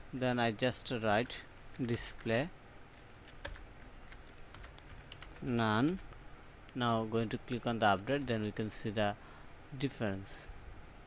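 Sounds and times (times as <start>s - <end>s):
computer keyboard typing: 1.2s - 2.4s, 3.3s - 6.2s.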